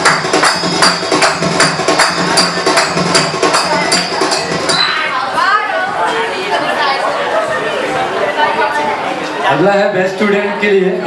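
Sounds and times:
audience chattering: 0.0s - 11.0s.

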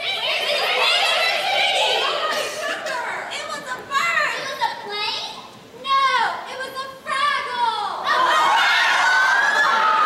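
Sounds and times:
high voices whooping and squealing: 8.0s - 10.0s.

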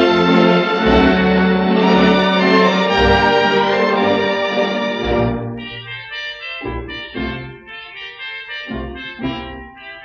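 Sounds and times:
orchestral music with brass: 0.0s - 10.0s.

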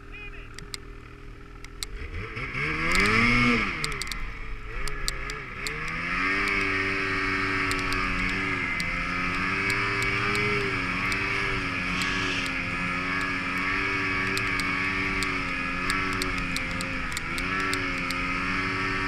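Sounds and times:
snowmobile engine under throttle: 0.0s - 19.0s.

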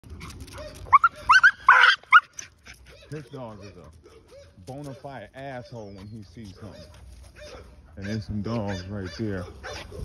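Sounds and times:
dog barking: 0.5s - 5.8s, 6.5s - 10.0s
dog yelping: 0.5s - 6.0s, 6.6s - 10.0s.

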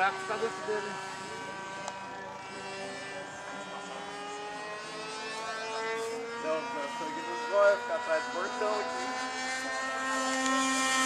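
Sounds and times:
model airplane motor droning: 0.0s - 11.0s.

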